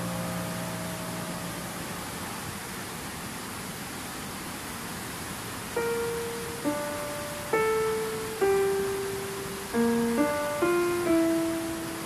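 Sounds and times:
soft background music chord: 0.0 - 2.4, 5.8 - 12.0
stream water rushing: 0.0 - 12.0.

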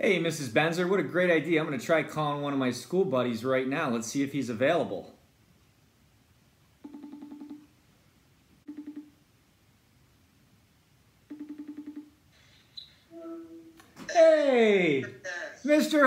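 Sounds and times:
warbling phone ringing tone: 6.8 - 7.7, 8.7 - 9.2, 11.3 - 12.2.

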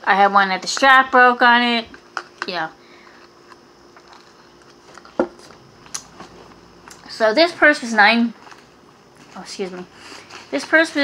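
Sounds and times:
faint handling noises: 1.9 - 7.1, 8.0 - 11.0.

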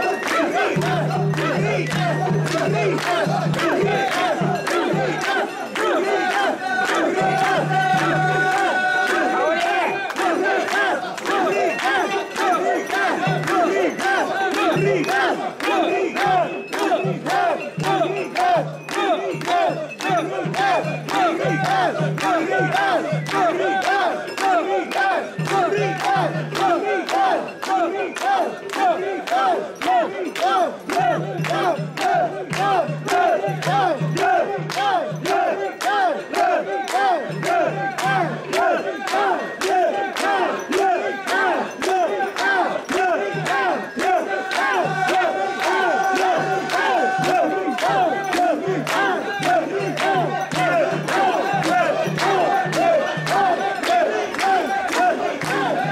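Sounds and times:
crowd chanting in unison: 0.0 - 55.9.

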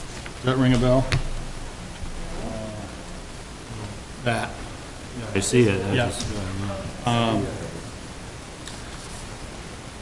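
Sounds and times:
room tone hiss: 0.0 - 10.0
faint murmured voice: 2.2 - 8.1.

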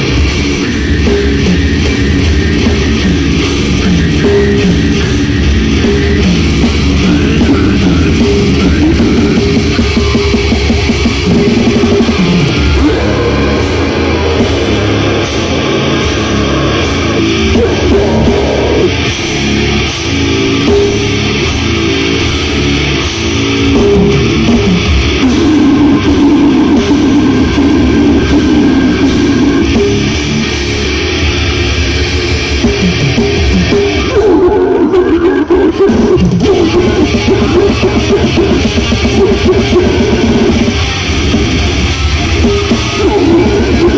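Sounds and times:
distorted electric guitars: 0.0 - 43.9
pounding drum kit: 0.0 - 43.9.

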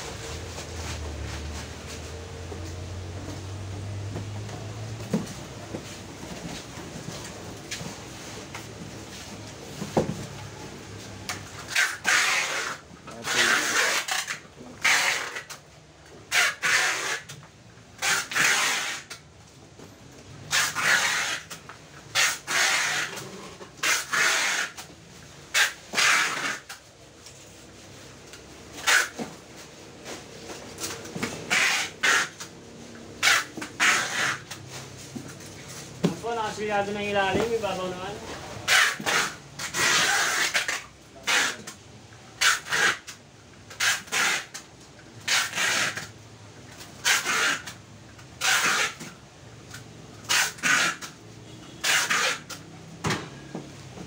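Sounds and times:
packing tape screeching off roll: 11.2 - 15.6, 16.3 - 17.4, 18.0 - 19.2, 20.5 - 24.9, 25.5 - 27.6, 28.7 - 29.4, 30.1 - 32.5, 33.2 - 34.9, 38.6 - 46.2, 46.8 - 47.8, 48.4 - 52.7.

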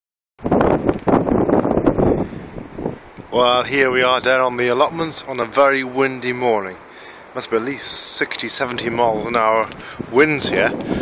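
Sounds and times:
gusty wind buffeting microphone: 0.4 - 11.0.

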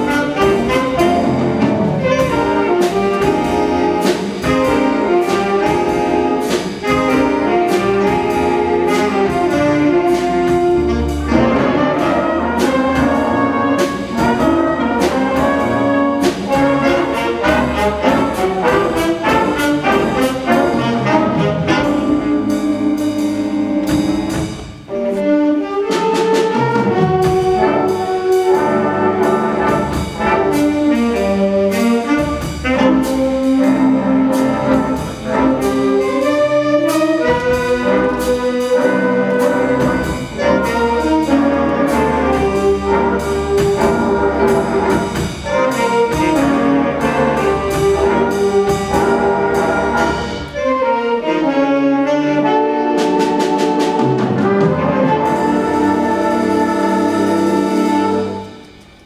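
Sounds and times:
jazz big band playing: 0.0 - 59.0.

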